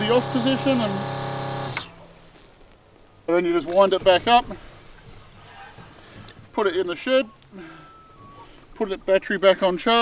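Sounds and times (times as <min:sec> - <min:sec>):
electric water pump humming: 0:00.0 - 0:02.1.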